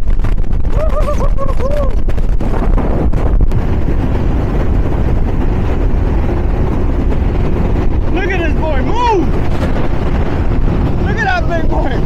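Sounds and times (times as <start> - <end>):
wind buffeting microphone: 0.0 - 12.0
speedboat engines droning: 3.5 - 12.0.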